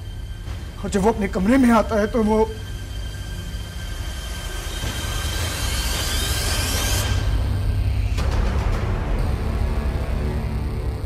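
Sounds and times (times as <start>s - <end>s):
low steady drone: 0.0s - 11.0s.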